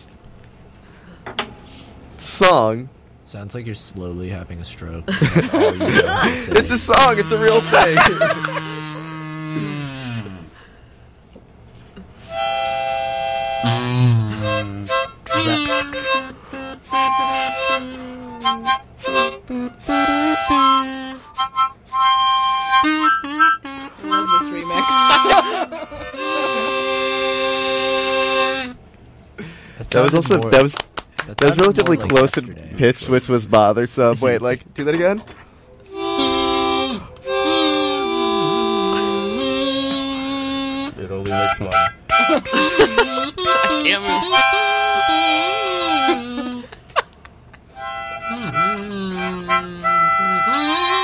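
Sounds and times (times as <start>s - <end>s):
harmonica playing: 5.7s - 10.8s, 12.2s - 28.8s, 35.9s - 46.8s, 47.7s - 51.0s.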